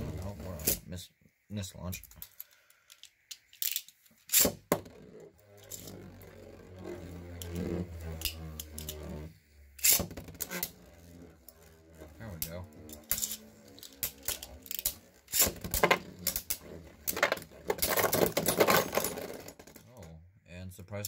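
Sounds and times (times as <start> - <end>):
spinning tops whirring: 4.3 - 19.8
spinning tops clacking together: 9.8 - 19.9.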